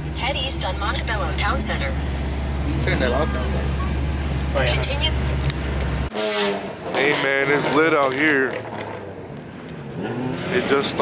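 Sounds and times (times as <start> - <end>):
car horn: 6.1 - 7.2.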